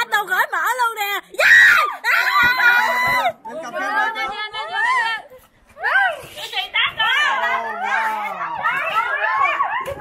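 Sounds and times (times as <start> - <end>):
people shrieking and shouting: 1.4 - 3.4, 4.0 - 10.0.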